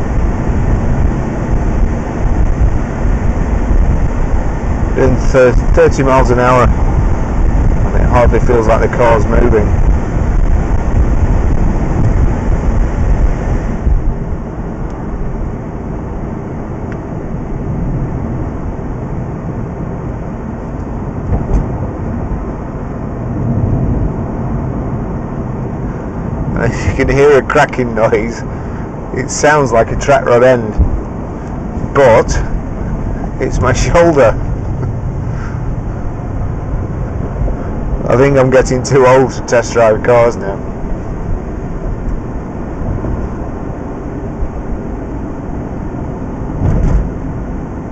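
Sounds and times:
car road and engine rumble: 0.0 - 47.9.

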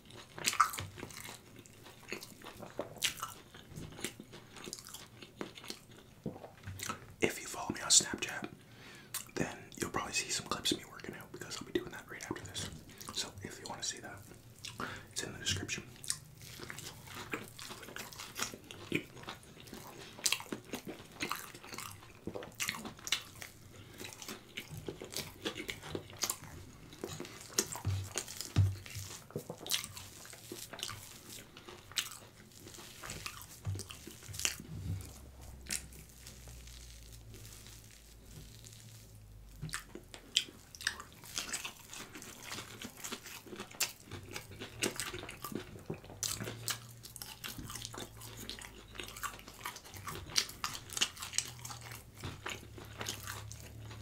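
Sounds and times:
crunching fried food: 0.0 - 8.5, 9.1 - 54.0
wet chewing: 0.0 - 54.0.

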